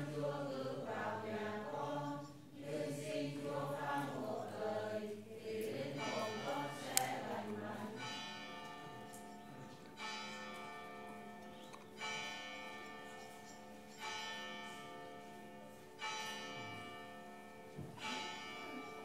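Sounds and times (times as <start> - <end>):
large church bell striking: 5.8 - 19.0.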